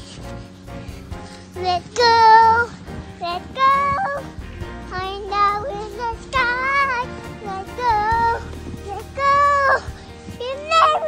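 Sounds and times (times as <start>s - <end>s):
instrumental backing track: 0.0s - 11.0s
girl singing: 1.6s - 11.0s.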